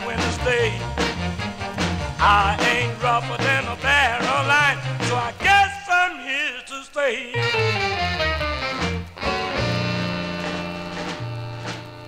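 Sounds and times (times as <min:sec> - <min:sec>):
drum hits: 0:00.0 - 0:05.5, 0:08.8 - 0:12.0
bass: 0:00.0 - 0:06.1, 0:07.3 - 0:12.0
rhythm and blues band chord: 0:00.0 - 0:06.6, 0:07.3 - 0:12.0.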